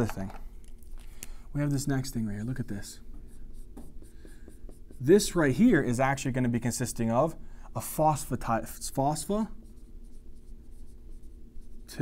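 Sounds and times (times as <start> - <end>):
low electrical hum: 0.0 - 12.0
marker scratching on whiteboard: 2.8 - 6.0, 8.9 - 12.0.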